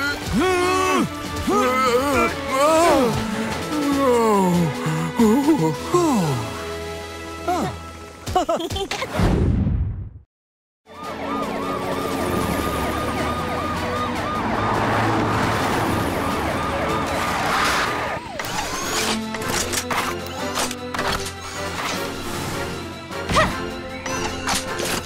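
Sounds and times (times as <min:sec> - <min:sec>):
background music: 0:00.0 - 0:09.2, 0:10.9 - 0:25.0
emergency siren warbling: 0:10.9 - 0:19.2.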